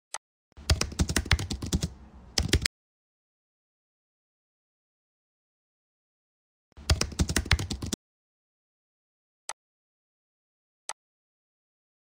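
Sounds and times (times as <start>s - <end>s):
computer keyboard typing: 0.6s - 2.7s, 6.8s - 8.0s.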